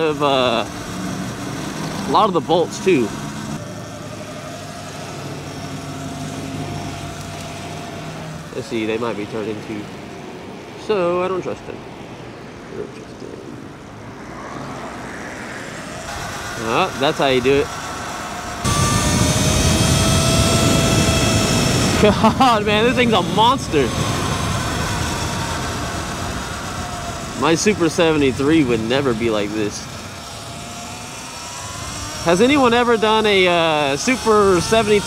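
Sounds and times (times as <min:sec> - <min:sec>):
electric motor and chain whine: 0:00.0 - 0:09.9, 0:14.8 - 0:35.0
road and wind noise: 0:00.0 - 0:35.0
wind rush on microphone: 0:18.6 - 0:28.8.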